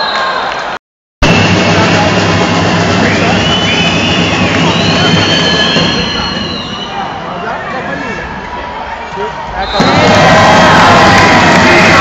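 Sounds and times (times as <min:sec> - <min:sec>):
dense crowd noise: 0:00.0 - 0:12.0
steady low drone: 0:01.2 - 0:06.7.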